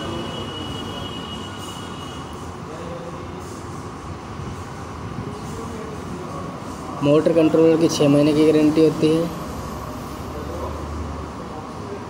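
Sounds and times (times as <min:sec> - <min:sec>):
air cooler fan running: 0:00.0 - 0:12.0.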